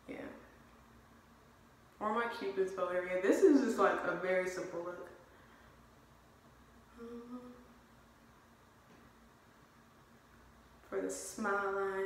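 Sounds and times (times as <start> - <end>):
thin low hum: 0.0 - 12.0
woman humming: 6.9 - 7.8.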